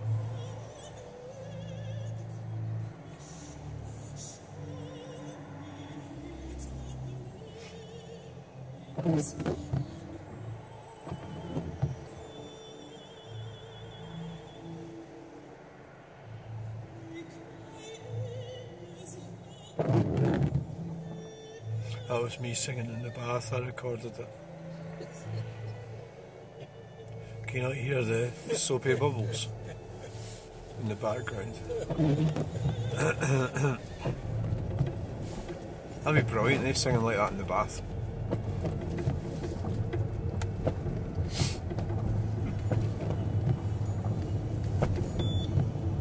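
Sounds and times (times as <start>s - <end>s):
car cabin hum while driving: 0.0s - 14.6s, 16.4s - 46.0s
voice from car radio: 21.8s - 25.7s, 27.4s - 34.2s, 36.0s - 37.9s
person singing with vibrato: 31.4s - 34.4s.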